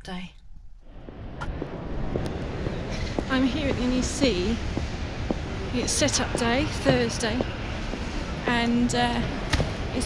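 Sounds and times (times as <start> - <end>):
low rumble and hiss: 0.0 - 10.0.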